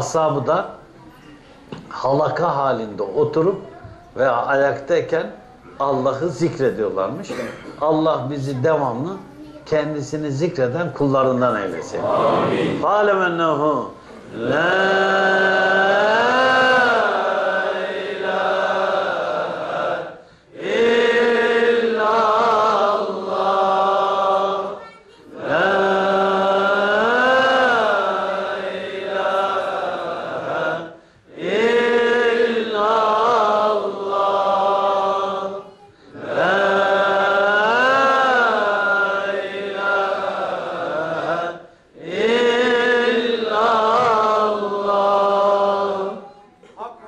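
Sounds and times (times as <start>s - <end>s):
devotional chanting: 0.0s - 0.8s, 1.7s - 46.4s.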